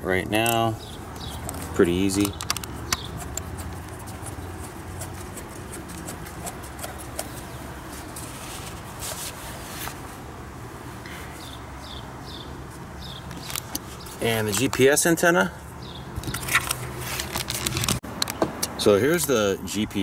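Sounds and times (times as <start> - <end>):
steady low hum: 0.0 - 14.2
metal nut clicking and scraping: 0.3 - 7.6, 13.3 - 14.9.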